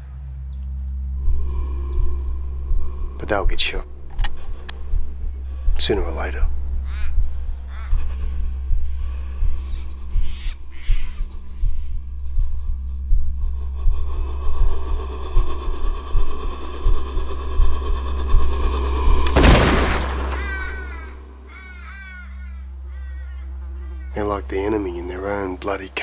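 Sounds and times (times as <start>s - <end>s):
low droning music: 0.0s - 26.0s
rifle shot: 19.4s - 20.9s.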